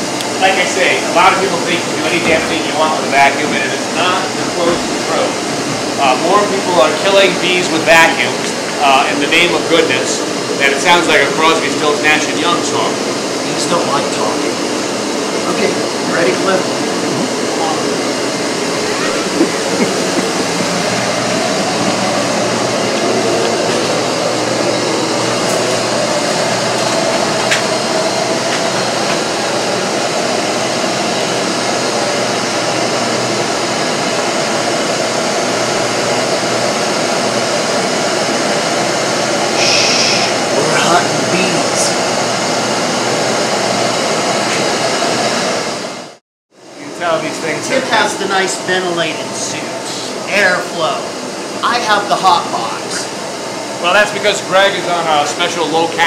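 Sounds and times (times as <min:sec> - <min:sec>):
bee vacuum running: 0:00.0 - 0:56.0.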